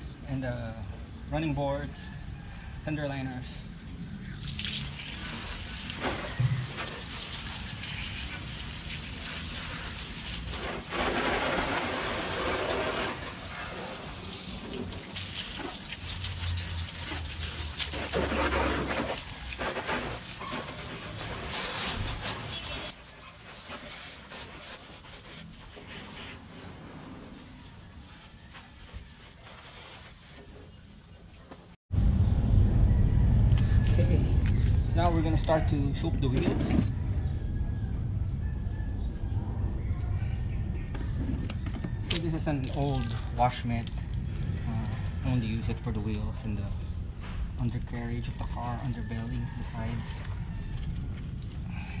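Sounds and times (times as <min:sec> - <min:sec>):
hose nozzle spraying water: 0:04.4 - 0:26.5
low rumble: 0:31.9 - 0:42.1.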